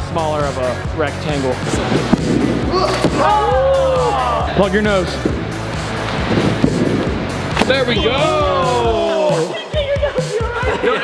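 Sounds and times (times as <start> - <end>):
background music with bass: 0.0 - 11.0
group shouting and cheering: 2.7 - 4.7, 7.7 - 11.0.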